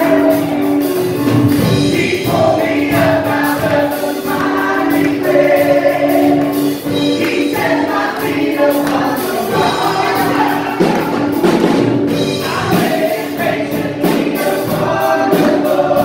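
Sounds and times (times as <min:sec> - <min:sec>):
keyboard accompaniment: 0:00.0 - 0:16.0.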